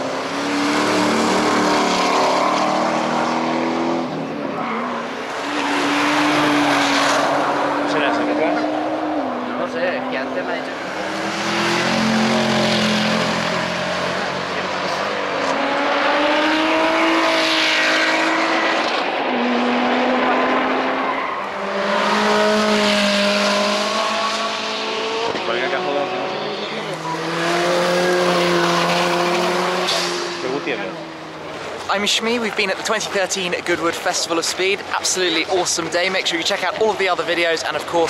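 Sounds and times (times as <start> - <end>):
cars accelerating past: 0.0 - 32.6.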